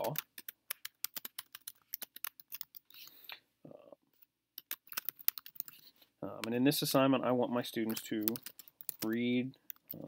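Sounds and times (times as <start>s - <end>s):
typing on computer keyboard: 0.0s - 2.9s, 4.6s - 5.8s, 7.9s - 10.0s.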